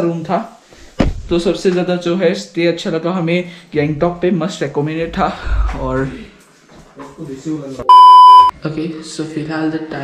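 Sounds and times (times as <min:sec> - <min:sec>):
high-pitched electronic beep: 0:07.9 - 0:08.5.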